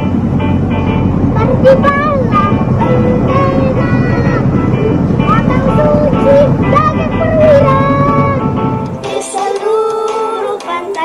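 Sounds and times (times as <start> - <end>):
loud steady low rumble: 0.0 - 9.1
backing track: 0.0 - 11.0
child singing: 1.4 - 8.4, 9.1 - 11.0.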